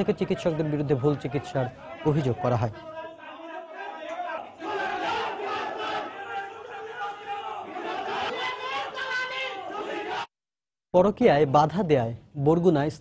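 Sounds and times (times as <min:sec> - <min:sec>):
crowd of men shouting: 0:00.0 - 0:10.3.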